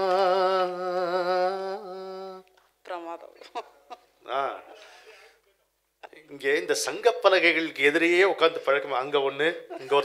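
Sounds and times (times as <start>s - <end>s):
person singing unaccompanied: 0.0s - 2.5s.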